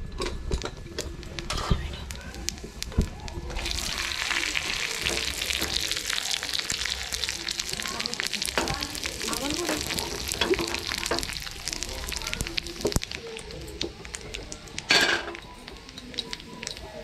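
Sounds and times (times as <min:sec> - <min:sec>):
chillies sizzling in hot oil: 0:00.1 - 0:17.0.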